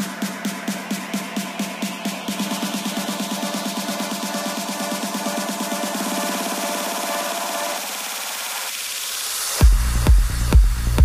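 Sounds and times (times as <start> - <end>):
electronic trance music: 0.0 - 11.0.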